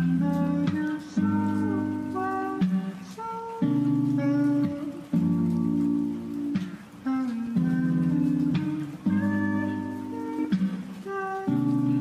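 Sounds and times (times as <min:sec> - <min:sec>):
mellow lofi music: 0:00.0 - 0:12.0.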